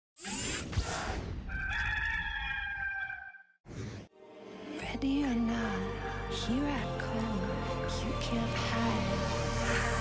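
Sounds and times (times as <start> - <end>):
rooster crowing: 1.5 - 3.5.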